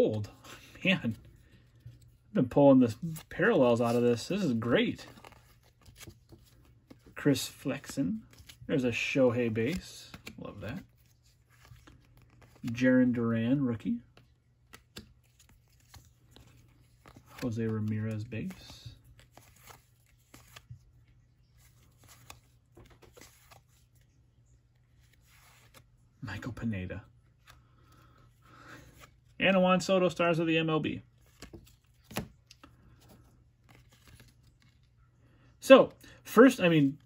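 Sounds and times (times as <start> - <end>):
cards sliding and ticking: 2.9 - 26.0, 31.2 - 35.0.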